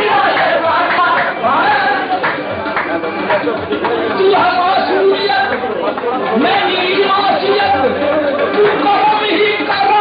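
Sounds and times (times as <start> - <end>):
men singing together: 0.0 - 3.1.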